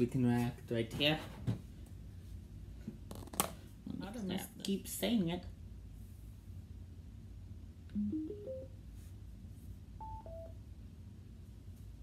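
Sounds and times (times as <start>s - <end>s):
phone electronic tones: 8.0s - 8.8s, 10.0s - 10.6s.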